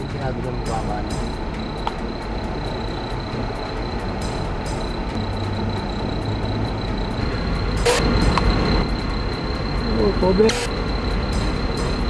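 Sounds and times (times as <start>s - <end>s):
thin high whine: 0.0s - 12.0s
traffic rumble and hiss: 0.0s - 12.0s.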